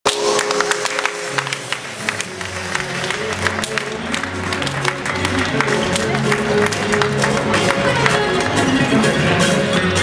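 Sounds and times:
hand claps and applause: 0:00.1 - 0:09.4.

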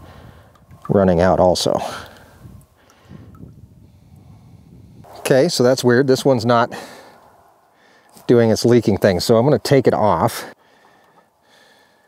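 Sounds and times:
wind rumble on microphone: 0:00.0 - 0:01.4, 0:02.1 - 0:05.3.

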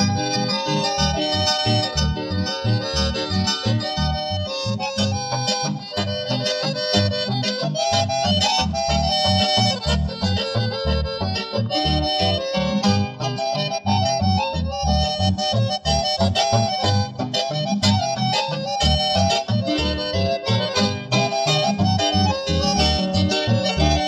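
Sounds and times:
accordion melody: 0:00.0 - 0:24.0
bass and guitar accompaniment: 0:00.0 - 0:24.0.

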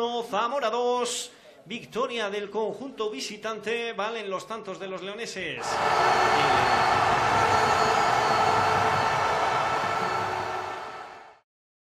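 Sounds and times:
steady tones: 0:05.6 - 0:11.4.

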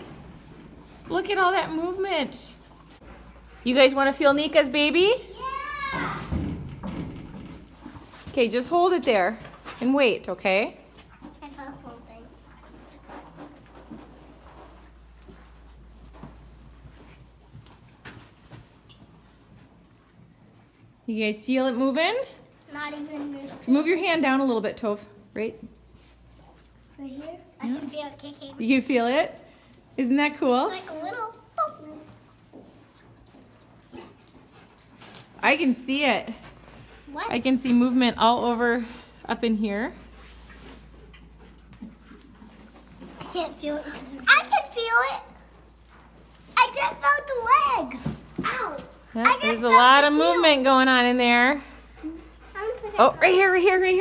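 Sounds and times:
faint animal panting: 0:51.6 - 0:53.4.

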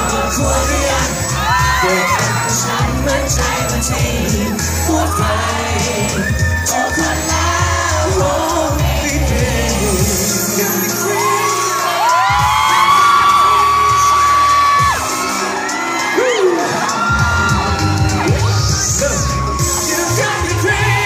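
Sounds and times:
audience whooping: 0:00.0 - 0:08.6, 0:10.7 - 0:21.0
live pop song over loudspeakers: 0:00.0 - 0:21.0.

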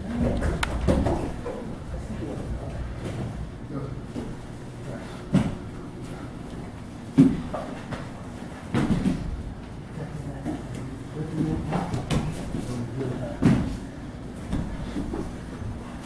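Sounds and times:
bodies thumping on mats: 0:07.0 - 0:09.5.

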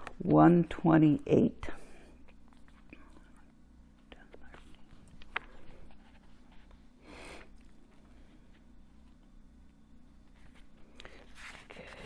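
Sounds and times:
book pages rustling: 0:04.4 - 0:06.9, 0:10.2 - 0:12.0.

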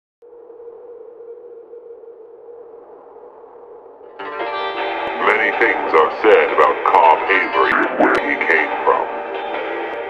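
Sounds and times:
steady electronic drone: 0:00.2 - 0:10.0.

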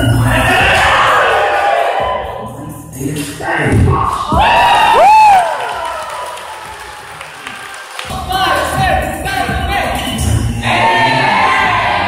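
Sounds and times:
audience clapping: 0:04.9 - 0:08.9.

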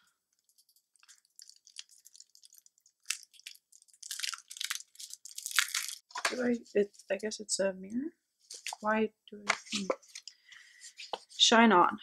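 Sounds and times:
packaging crinkling and rustling: 0:00.4 - 0:07.1.

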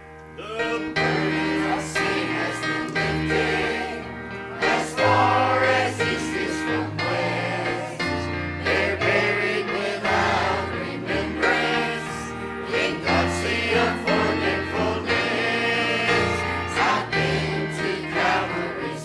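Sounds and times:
instrumental accompaniment: 0:00.0 - 0:19.0
choir singing a hymn: 0:00.6 - 0:19.0.

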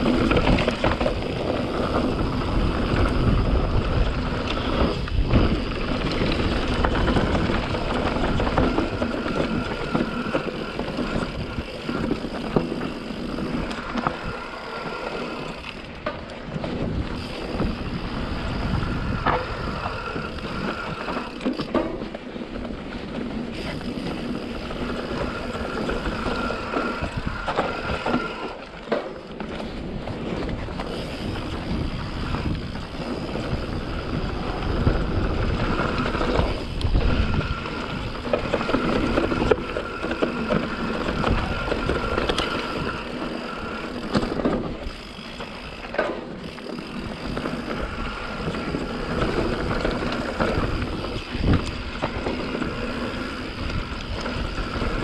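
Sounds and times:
bike rattling: 0:00.0 - 0:55.0
tyres rushing on dirt: 0:00.0 - 0:55.0.

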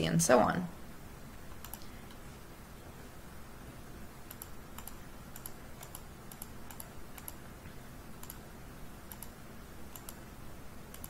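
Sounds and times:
faint low hum: 0:00.0 - 0:11.0
computer mouse clicks: 0:01.5 - 0:02.2, 0:04.2 - 0:07.4, 0:08.2 - 0:08.4, 0:09.1 - 0:10.3.

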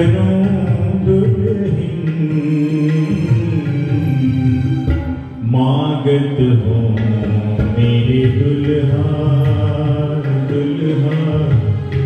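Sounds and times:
harmonium: 0:00.0 - 0:12.0
man singing devotional song: 0:00.0 - 0:12.0.

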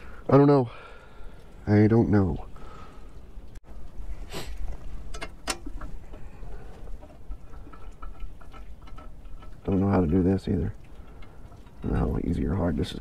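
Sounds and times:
clicks and scrapes of metal parts: 0:04.6 - 0:12.0.

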